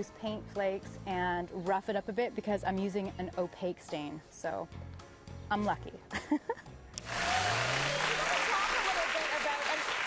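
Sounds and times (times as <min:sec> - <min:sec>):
audience applause: 0:07.0 - 0:10.0.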